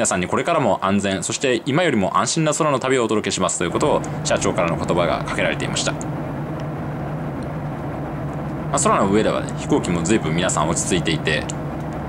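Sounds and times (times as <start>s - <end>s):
airflow and engine rush: 0.0s - 12.0s
steady low hum: 0.0s - 12.0s.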